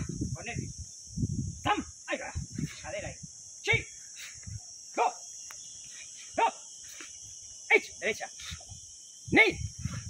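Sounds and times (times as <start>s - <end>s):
high-pitched hiss: 0.0s - 10.0s
person shouting short calls: 1.6s - 5.2s, 6.3s - 6.7s, 7.7s - 8.6s, 9.3s - 9.8s.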